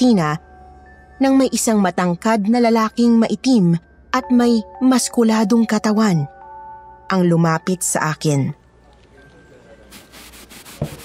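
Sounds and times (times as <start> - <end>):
broom sweeping hard floor: 9.9 - 11.0.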